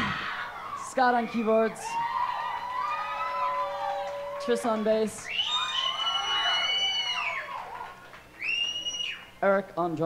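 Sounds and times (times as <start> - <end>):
audience screaming: 0.0 - 9.3.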